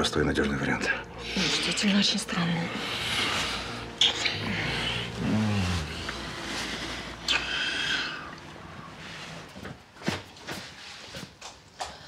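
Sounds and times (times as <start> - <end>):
person moaning: 4.1 - 6.3.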